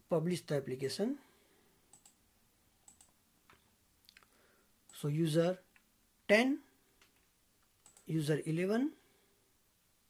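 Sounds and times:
computer mouse clicks: 1.9s - 2.2s, 2.8s - 4.3s, 7.0s - 8.1s.

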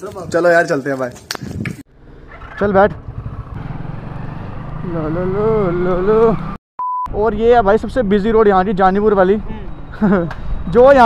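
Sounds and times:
motorcycle engine riding off: 1.9s - 6.6s.

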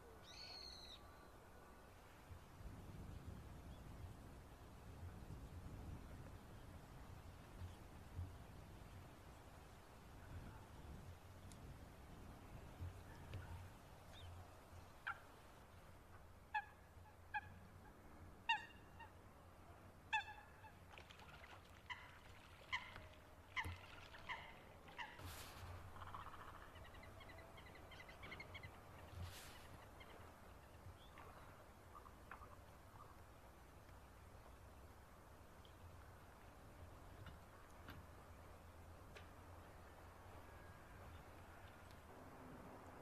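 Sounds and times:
high bird call: 0.2s - 1.0s.

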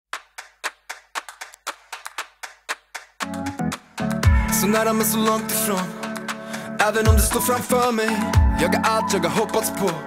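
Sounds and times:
rhythmic handclaps: 0.1s - 10.0s.

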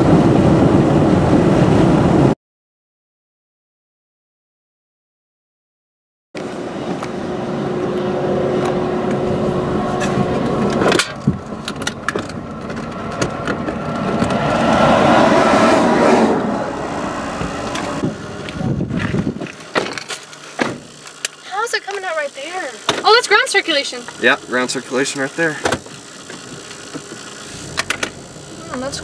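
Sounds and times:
highway traffic passing: 6.4s - 29.0s.

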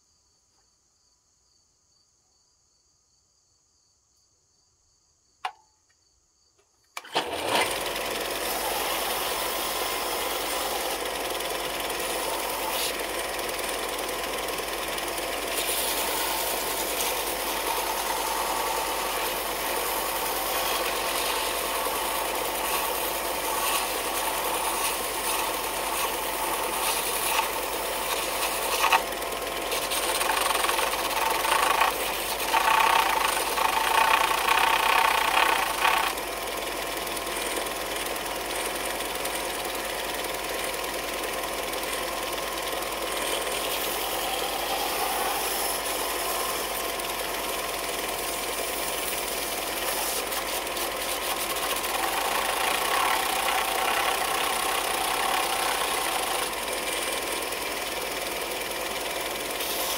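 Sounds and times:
belt sander running: 7.0s - 59.9s
wood sanding on belt: 7.5s - 39.8s, 41.2s - 58.0s, 59.1s - 59.9s.

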